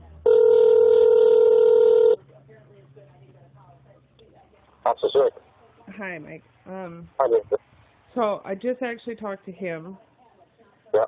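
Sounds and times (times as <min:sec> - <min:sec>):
telephone ringing tone: 0:00.2 - 0:02.2.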